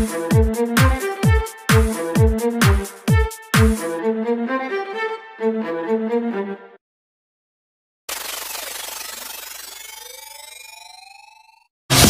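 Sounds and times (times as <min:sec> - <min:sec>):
electronic dance music: 0:00.0 - 0:04.0
synthesized riser: 0:08.1 - 0:12.0.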